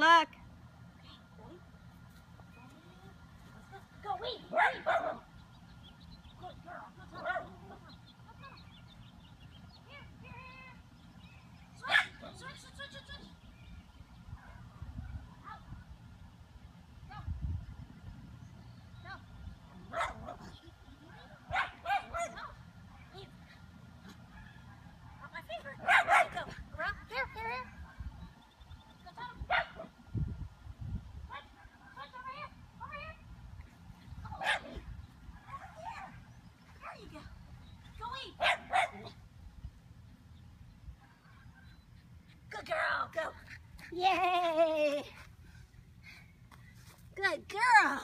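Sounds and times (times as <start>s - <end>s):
small dog barking: 4.5s - 5.2s, 11.9s - 12.4s, 19.9s - 20.5s, 21.5s - 22.6s, 25.8s - 26.5s, 29.5s - 29.9s, 34.4s - 34.8s, 38.4s - 39.2s.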